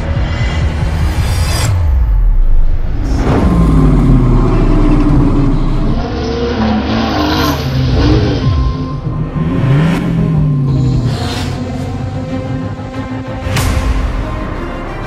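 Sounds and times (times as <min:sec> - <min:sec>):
background music: 0:00.0 - 0:15.0
car engine revving: 0:01.9 - 0:13.4.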